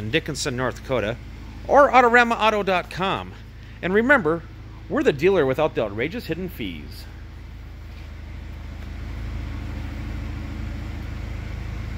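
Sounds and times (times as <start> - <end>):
car engine idling: 0.0 - 11.9.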